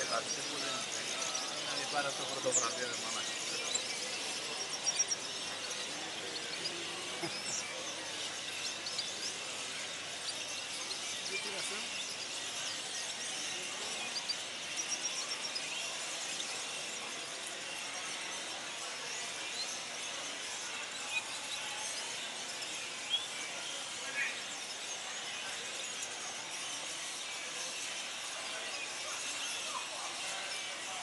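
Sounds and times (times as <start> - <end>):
birds chirping and twittering: 0.0 - 31.0.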